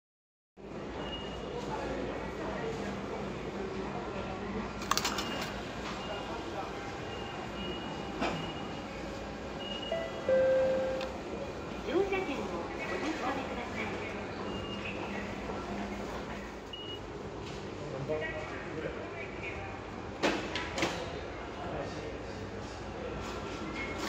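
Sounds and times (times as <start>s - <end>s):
voices: 1.0s - 17.0s
short steady beep: 9.6s - 11.0s.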